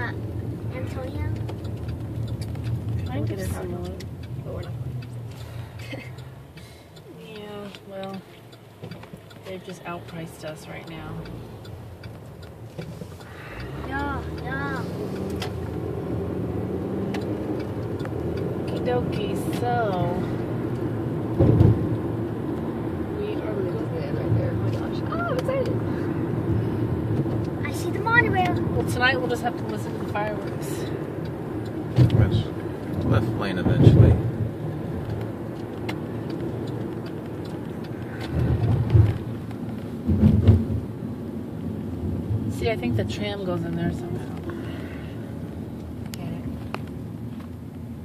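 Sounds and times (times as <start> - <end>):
car cabin road noise: 0.0 - 48.0
low thump: 21.4 - 21.8, 40.0 - 40.8.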